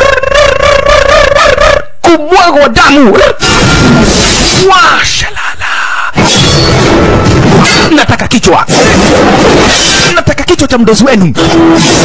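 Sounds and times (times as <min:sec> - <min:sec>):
long vocal cry: 0:00.0 - 0:02.0.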